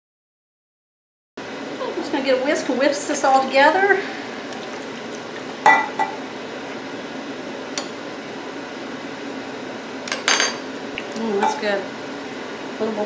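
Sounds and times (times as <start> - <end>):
whisk swishing liquid: 4.4 - 5.8
whisk clinking against glass: 5.6 - 6.2.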